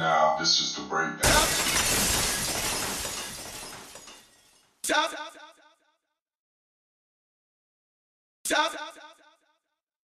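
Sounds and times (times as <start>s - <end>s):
glass breaking crash: 1.2s - 4.8s.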